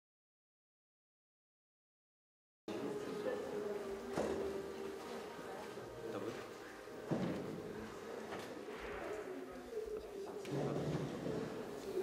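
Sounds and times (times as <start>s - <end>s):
faint voices: 2.7s - 12.0s.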